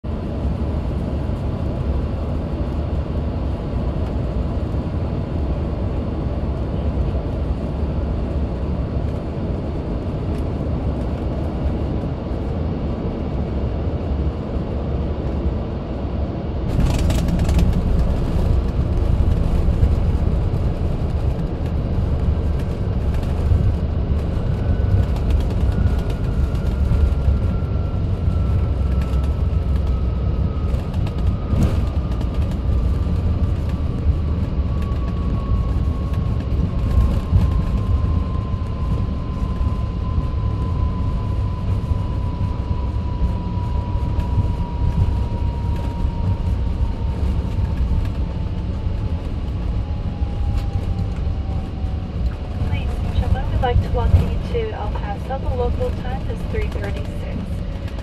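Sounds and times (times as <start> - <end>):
jet cabin rumble: 0.1 - 58.0.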